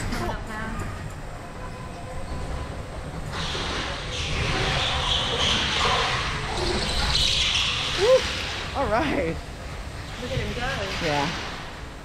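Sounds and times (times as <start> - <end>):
go-kart tyres screeching: 3.1 - 8.8.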